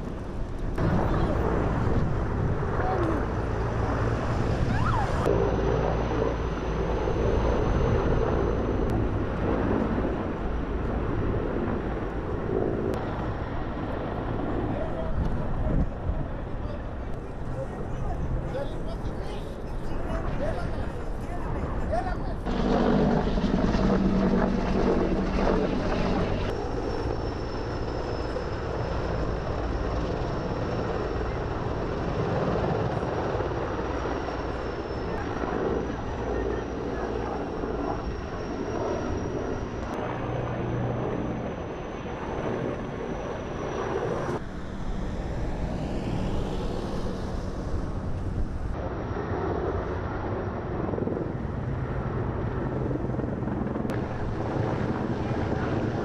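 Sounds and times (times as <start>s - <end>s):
helicopter engine and rotor: 0.0s - 56.0s.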